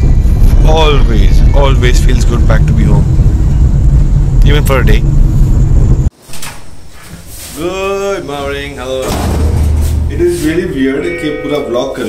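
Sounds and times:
car driving low rumble: 0.0 - 6.1.

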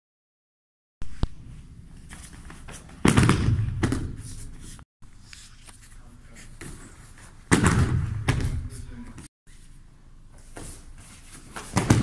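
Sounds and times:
bodies thudding on judo mat: 11.6 - 12.0.

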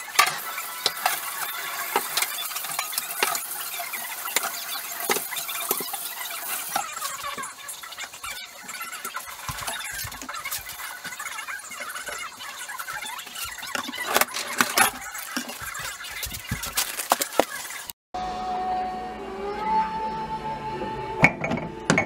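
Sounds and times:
dishes clinking and knocking: 21.2 - 22.0.

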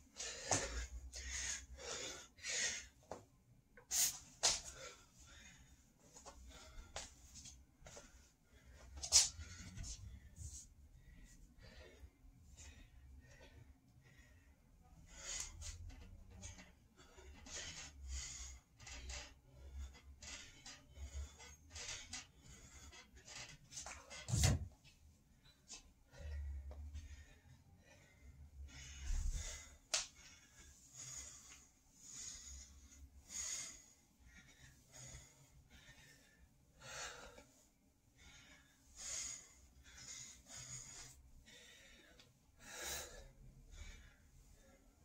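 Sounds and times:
man breathing hard: 0.0 - 24.2, 25.4 - 45.0.

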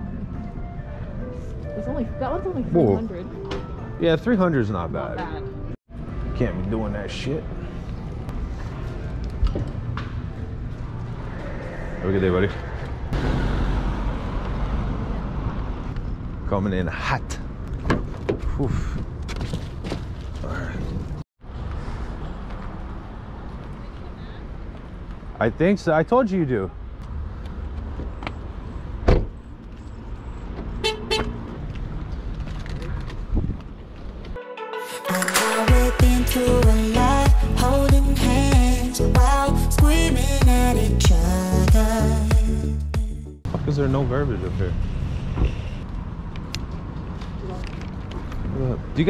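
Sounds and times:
car door slamming: 29.0 - 29.4
car horn chirps: 30.8 - 31.4
wind rumble on microphone: 32.1 - 34.3.

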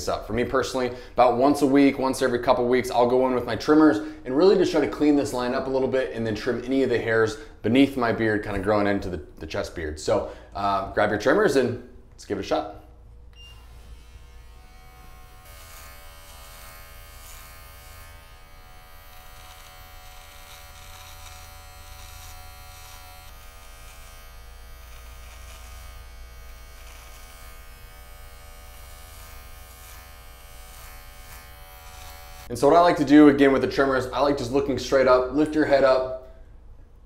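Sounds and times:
electric beard trimmer buzzing: 13.4 - 32.5.

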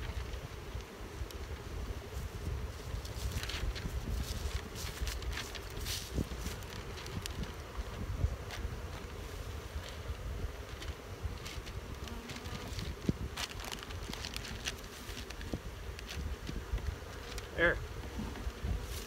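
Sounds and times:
bees buzzing: 0.0 - 19.0.

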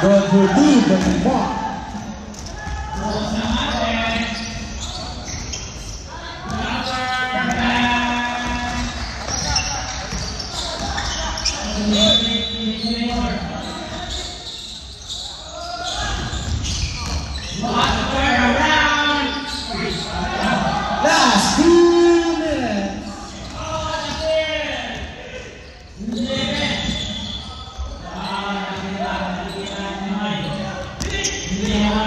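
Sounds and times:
players calling out: 0.0 - 32.0
ball bouncing on wooden court: 0.8 - 11.6, 30.8 - 32.0.

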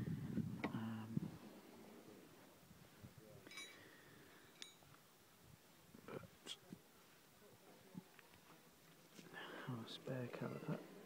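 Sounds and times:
faint metallic clinks: 3.4 - 5.0.

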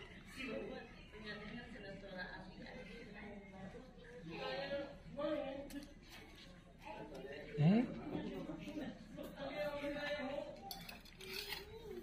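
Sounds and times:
voices in background: 0.0 - 12.0.

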